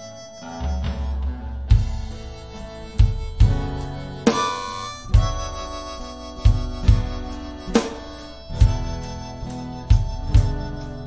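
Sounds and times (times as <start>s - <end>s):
acoustic guitar: 0.0s - 11.0s
harmonica melody: 0.0s - 11.0s
drum kit hits: 0.6s - 9.2s.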